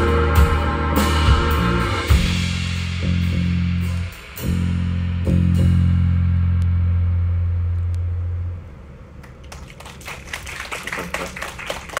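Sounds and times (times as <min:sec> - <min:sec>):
band's low bass-heavy chord: 0:00.0 - 0:09.2
audience clapping: 0:09.2 - 0:12.0.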